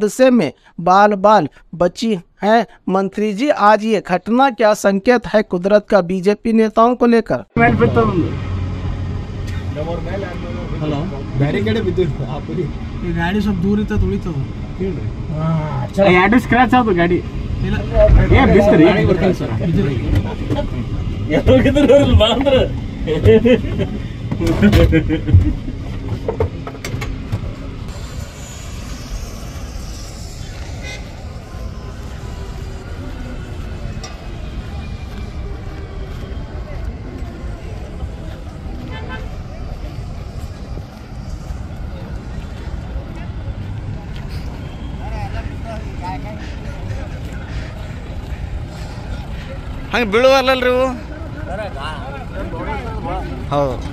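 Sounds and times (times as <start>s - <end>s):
men talking: 0.0s - 8.5s, 9.4s - 25.8s, 44.9s - 53.9s
helicopter rumble: 7.6s - 53.9s
faint voices: 27.6s - 53.9s.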